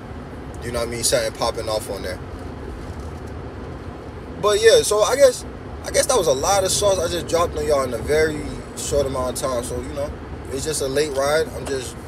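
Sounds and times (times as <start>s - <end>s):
road rumble inside car: 0.0s - 12.0s.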